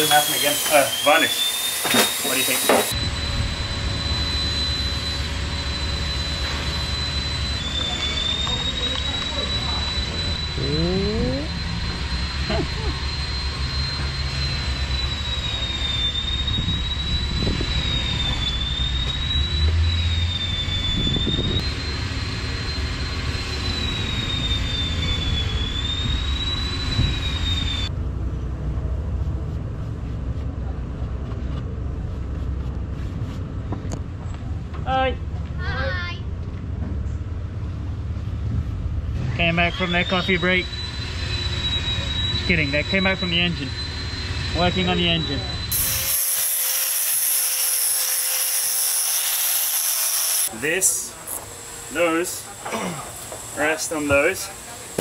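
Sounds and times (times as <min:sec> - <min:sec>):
motor high-pitched whine: 0:00.0 - 0:28.0, 0:39.0 - 0:55.0.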